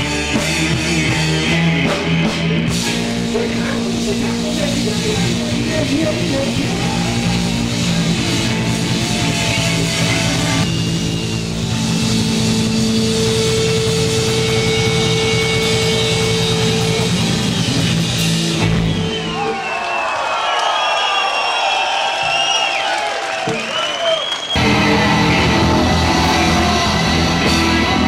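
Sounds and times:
live rock band: 0.0 - 19.6, 24.5 - 28.0
crowd cheering and shouting: 0.0 - 28.0.

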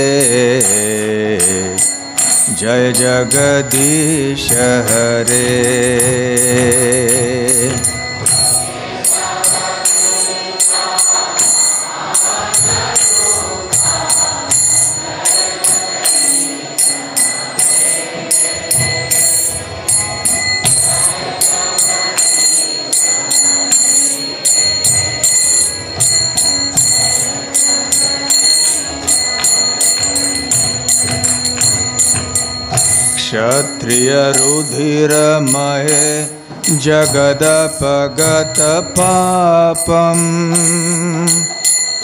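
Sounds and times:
sustained instrument notes: 0.0 - 42.0.

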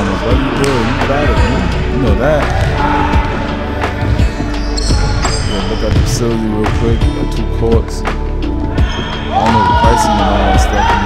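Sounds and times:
basketballs bouncing on court: 0.0 - 7.0
background music: 0.0 - 11.0.

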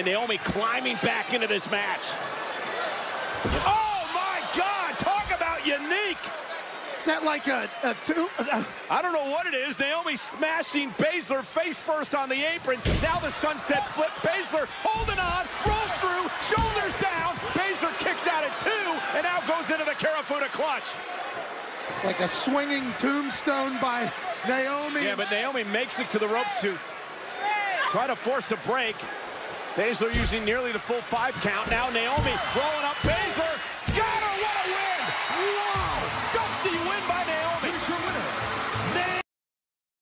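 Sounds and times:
crowd cheering: 0.0 - 39.2
excited voices speaking: 0.2 - 39.2
music: 37.5 - 39.2.

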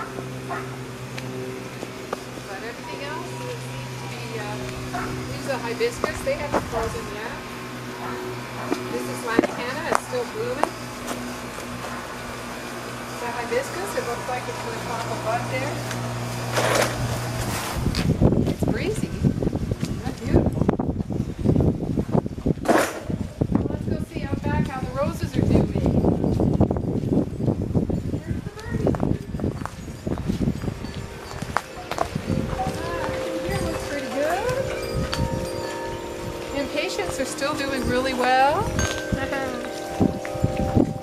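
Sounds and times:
steady low hum: 0.0 - 41.0
wind buffeting microphone: 0.0 - 41.0.

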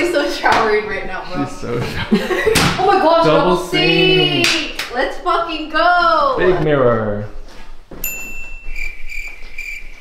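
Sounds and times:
high-pitched chirping tone: 8.2 - 10.0.

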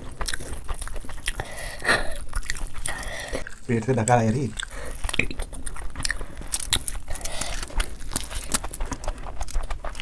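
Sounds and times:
wet chewing and lip-smacking: 0.0 - 10.0
fingers squishing through rice: 3.6 - 10.0.

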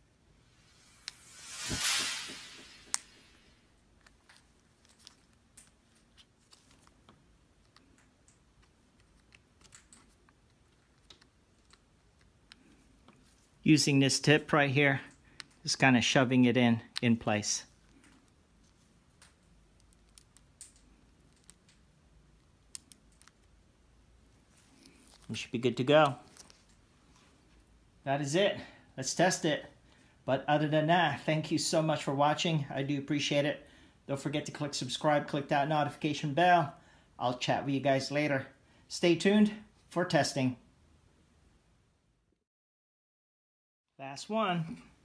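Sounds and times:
rushing hiss: 0.6 - 3.6
small plastic clicks: 6.8 - 12.7, 19.2 - 23.6.

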